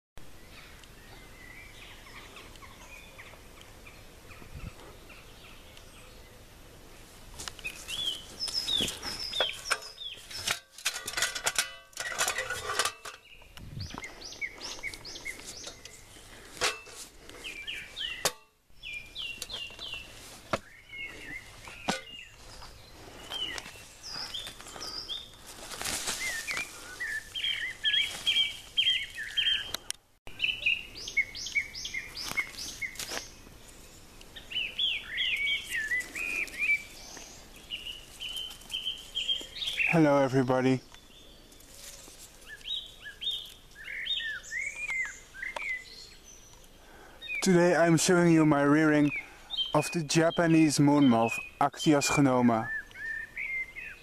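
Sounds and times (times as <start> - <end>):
songbirds singing and chirping: 0.2 - 54.0
rustling: 7.0 - 18.2, 19.4 - 29.9, 41.5 - 43.8.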